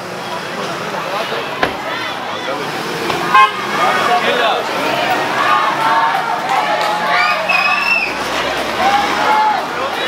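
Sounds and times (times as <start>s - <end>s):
street crowd chatter: 0.0s - 10.0s
car horn toot: 3.3s - 3.8s.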